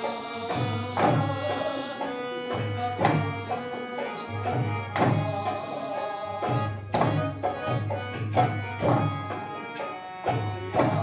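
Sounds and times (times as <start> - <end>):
steady held melody: 0.0 - 11.0.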